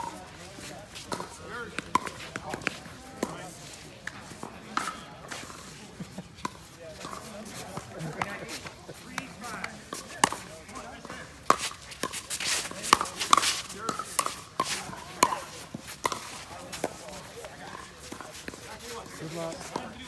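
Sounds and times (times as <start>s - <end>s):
paddles hitting pickleball: 1.0s - 5.8s, 6.4s - 20.0s.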